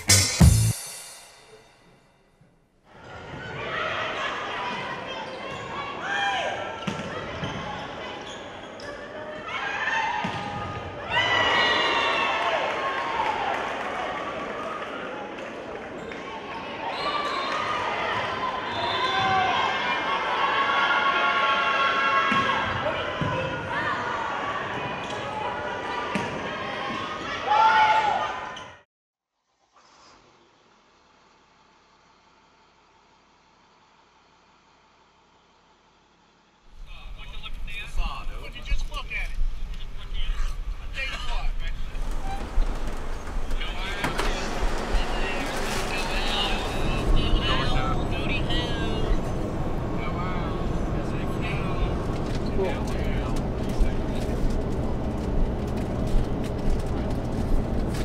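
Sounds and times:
voices and shouts echoing: 0:16.3 - 0:28.6, 0:43.5 - 0:54.2.

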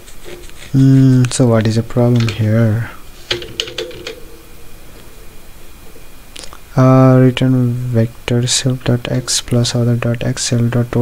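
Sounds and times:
computer keyboard keys clicking: 0:03.3 - 0:04.2.

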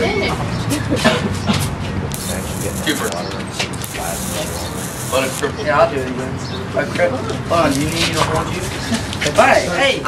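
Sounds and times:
plasma lighter electric hiss: 0:02.1 - 0:03.2, 0:03.8 - 0:05.5.

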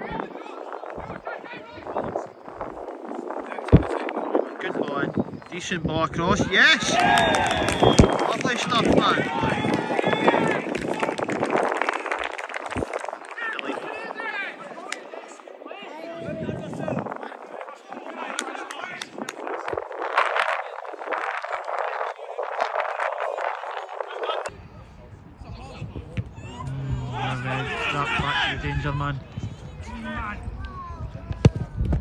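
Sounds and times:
distant shouts of footballers: 0:06.3 - 0:11.1, 0:25.7 - 0:31.2.

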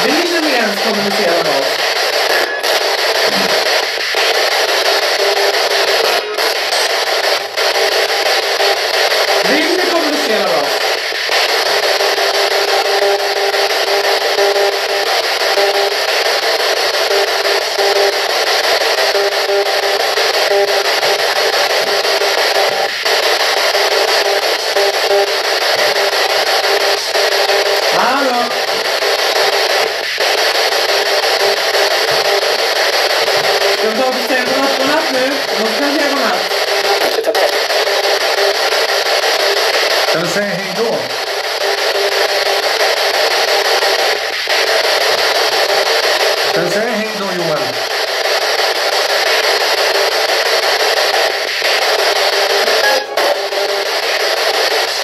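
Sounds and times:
radio static hiss: 0:00.0 - 0:55.0
static clicks: 0:00.0 - 0:55.0
voice-like broadcast snatches: 0:00.0 - 0:55.0.

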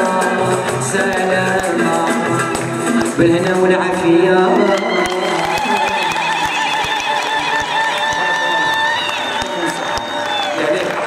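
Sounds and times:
audience ululating: 0:04.3 - 0:11.0.

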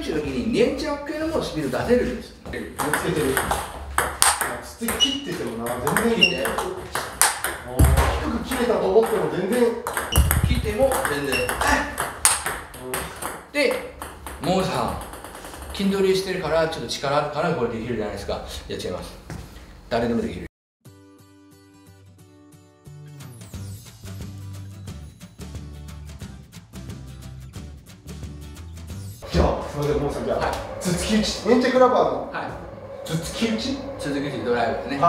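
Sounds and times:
man talking: 0:00.0 - 0:03.6, 0:04.4 - 0:12.0, 0:12.7 - 0:15.0, 0:29.2 - 0:35.0.

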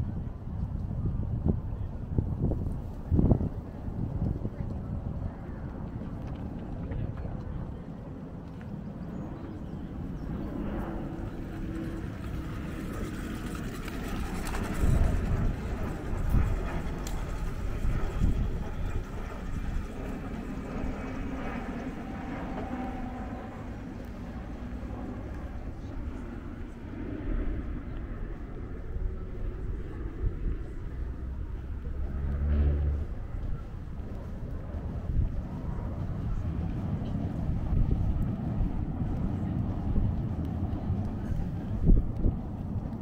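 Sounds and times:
distant engines rumbling: 0:00.0 - 0:43.0
faint indistinct voices: 0:00.0 - 0:43.0
wind buffeting microphone: 0:00.0 - 0:43.0.

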